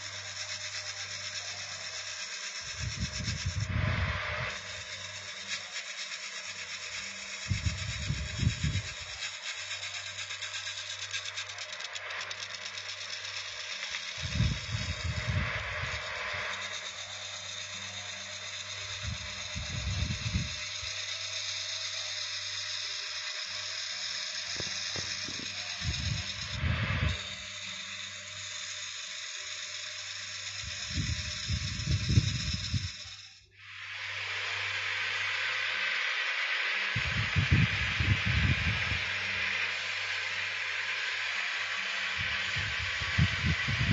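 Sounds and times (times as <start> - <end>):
tool hissing cutting wood: 0.0 - 43.9
wood lathe humming: 0.0 - 43.9
low rumbles: 25.8 - 27.2.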